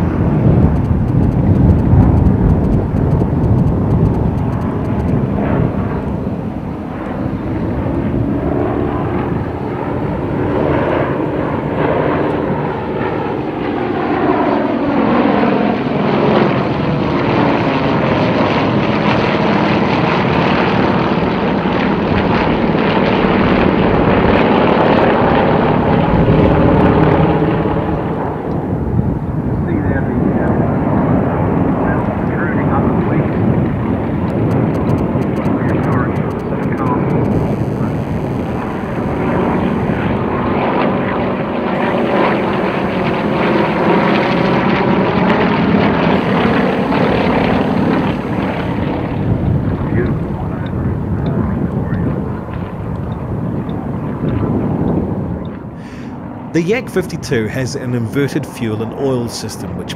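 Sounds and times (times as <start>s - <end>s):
propeller planes droning past: 0.0s - 59.9s.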